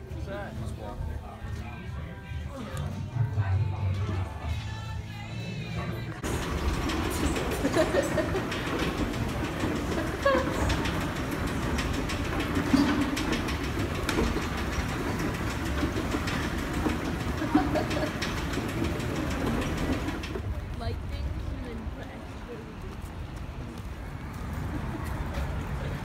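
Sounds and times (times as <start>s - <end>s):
subway train rumbling: 0.0s - 26.0s.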